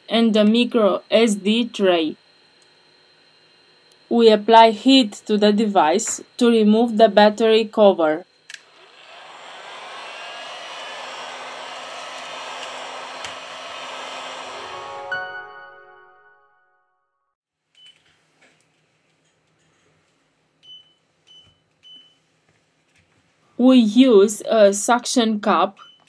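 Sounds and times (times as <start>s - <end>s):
heat gun blowing hot air: 8.6s - 14.6s.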